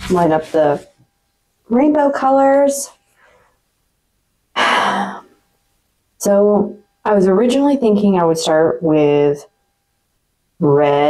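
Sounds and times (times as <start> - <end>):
woman sighing: 4.6 - 5.3.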